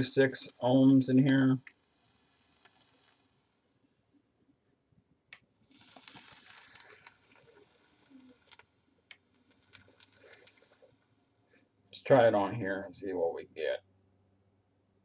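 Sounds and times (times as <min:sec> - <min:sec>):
vape coil hissing: 0:00.0 - 0:03.6, 0:05.5 - 0:11.2
vape click: 0:05.3 - 0:10.8
faint clicks: 0:05.3 - 0:11.0.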